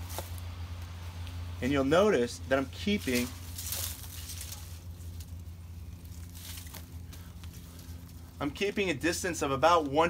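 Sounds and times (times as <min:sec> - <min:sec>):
leaves and twine rustling: 0:00.0 - 0:10.0
steady low hum: 0:00.0 - 0:10.0.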